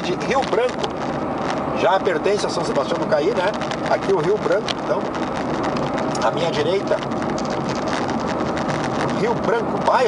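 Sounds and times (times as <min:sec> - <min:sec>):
road tyre and engine noise: 0:00.0 - 0:10.0
small rattles in car: 0:00.0 - 0:10.0.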